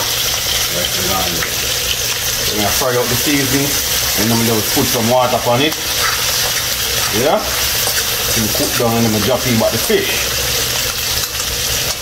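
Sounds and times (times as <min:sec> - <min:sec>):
vegetables sizzling in oil: 0:00.0 - 0:12.0
metal utensil scraping a pan: 0:05.2 - 0:08.8.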